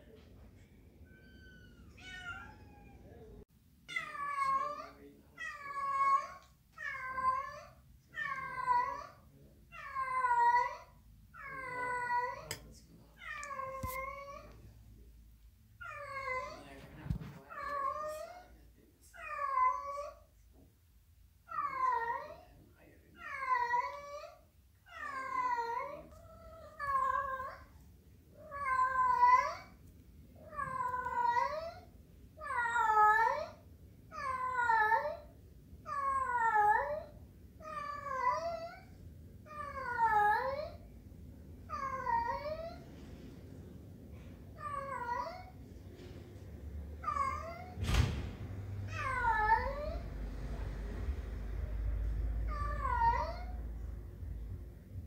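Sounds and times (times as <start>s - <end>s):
cat meowing: 1.0s - 12.6s, 13.2s - 14.6s, 15.8s - 18.5s, 19.2s - 20.2s, 23.2s - 27.7s, 28.4s - 29.8s, 30.4s - 35.3s, 35.9s - 38.9s, 44.6s - 45.6s, 47.0s - 47.8s, 48.9s - 50.1s, 52.5s - 53.7s.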